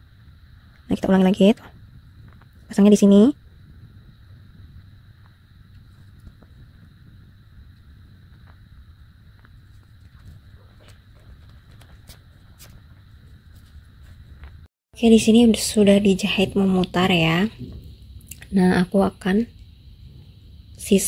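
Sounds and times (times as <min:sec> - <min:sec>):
faint high whine: 0:00.0 - 0:21.0
steady low hum: 0:00.0 - 0:21.0.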